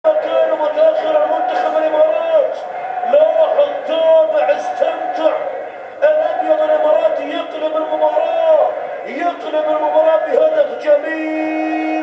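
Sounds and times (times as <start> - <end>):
sports commentator speaking: 0.0 - 12.0.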